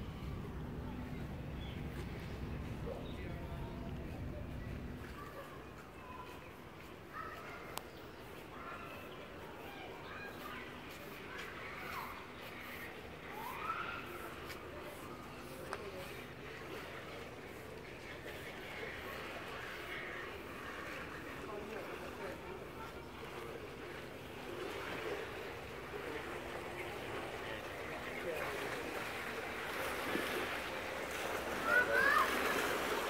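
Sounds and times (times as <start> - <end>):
distant people talking: 0.0 - 33.0.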